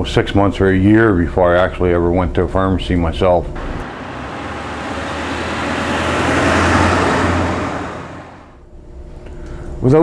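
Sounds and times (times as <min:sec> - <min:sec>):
road vehicle passing: 0:03.6 - 0:08.6.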